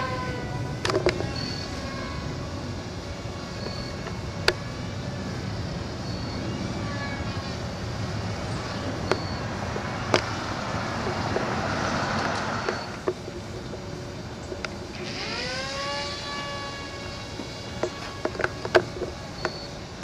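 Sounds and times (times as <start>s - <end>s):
propeller motor buzzing: 0.0s - 20.0s.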